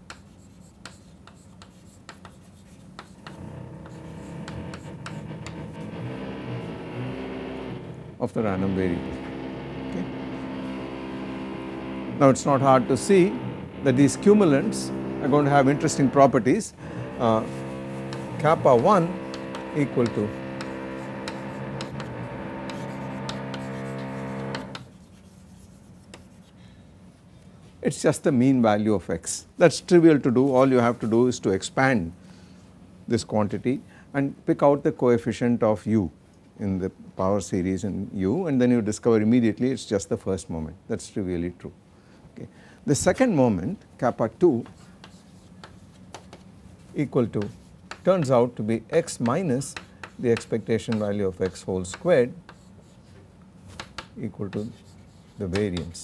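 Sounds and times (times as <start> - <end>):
chalk tapping and scraping: 0.0 - 5.8, 17.2 - 26.6, 44.6 - 56.0
low steady hum: 0.2 - 27.5.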